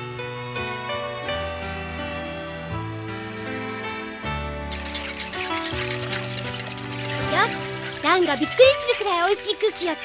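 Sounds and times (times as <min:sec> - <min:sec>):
background music: 0:00.0 - 0:10.0
whisk beating in bowl: 0:04.7 - 0:10.0.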